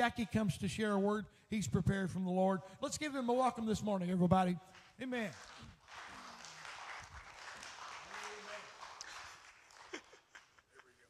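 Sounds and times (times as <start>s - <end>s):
congregation applauding: 4.6s - 10.8s.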